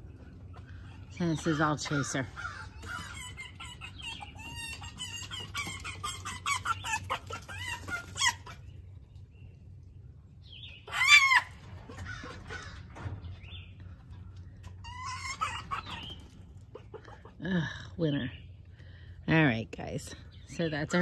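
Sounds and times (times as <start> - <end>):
foxes chattering chirps: 0.0 - 8.9, 14.7 - 18.5.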